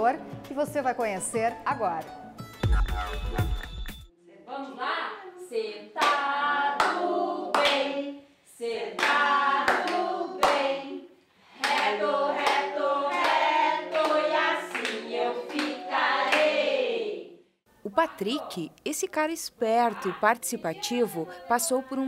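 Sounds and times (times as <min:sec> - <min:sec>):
children and adults singing: 0:04.4 - 0:17.4
hand claps: 0:06.8 - 0:07.8, 0:09.0 - 0:10.7, 0:11.6 - 0:16.5.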